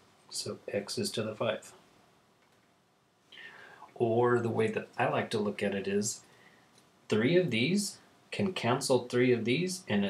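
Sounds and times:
soft breath drawn in: 3.3s - 3.9s.

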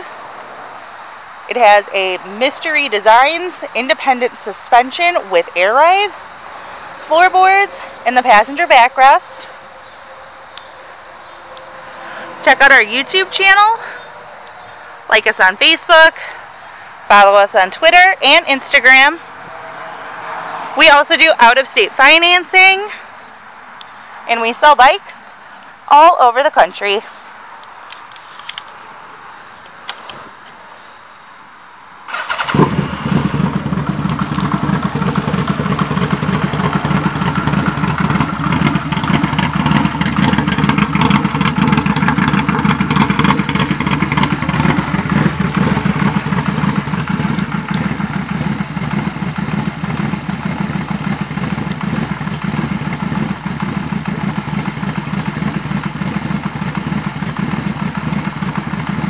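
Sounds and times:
motorcycle engine starting and idling: 32.1s - 59.0s.

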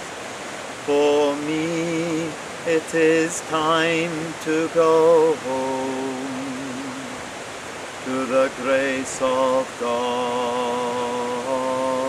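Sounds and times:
fast-flowing rocky stream: 0.0s - 12.0s
man singing unaccompanied: 0.8s - 7.3s, 8.0s - 12.0s.

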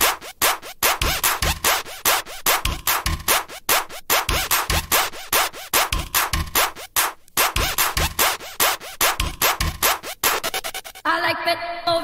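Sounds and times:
kick drum: 0.0s - 10.4s
rapid noisy percussion hits: 0.0s - 10.9s
electronic dance track: 0.0s - 12.0s.

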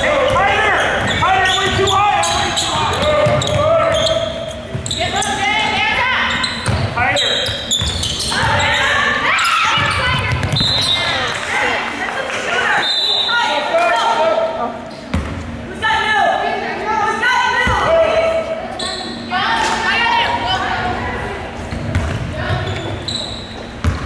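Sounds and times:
basketball bouncing on hardwood floor: 3.2s - 3.6s, 9.8s - 10.8s.

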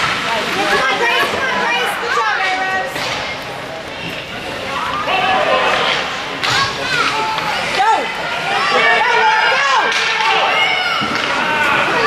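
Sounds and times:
crowd shouting and cheering: 0.0s - 12.0s
faint knocks from ice hockey play: 9.8s - 11.9s.

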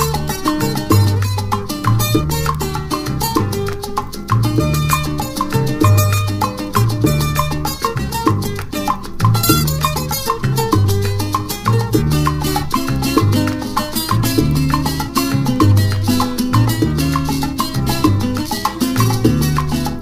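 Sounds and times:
salsa band instrumental: 0.0s - 20.0s.

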